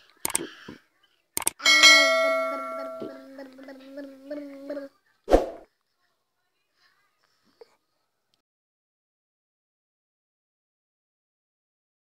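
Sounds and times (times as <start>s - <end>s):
bell-like notification chime: 1.6s - 3.3s.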